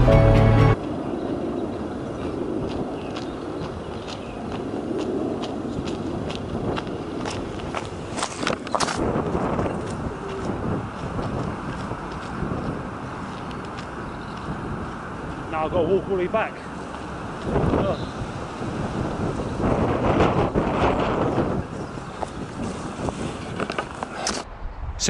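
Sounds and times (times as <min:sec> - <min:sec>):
background music: 0:00.0 - 0:00.8
footsteps on wet gravel: 0:02.7 - 0:15.5
steady low rush: 0:24.4 - 0:25.0.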